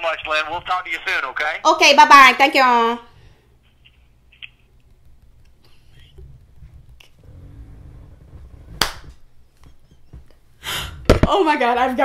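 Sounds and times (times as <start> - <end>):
faint low rumble: 5.9 - 8.8.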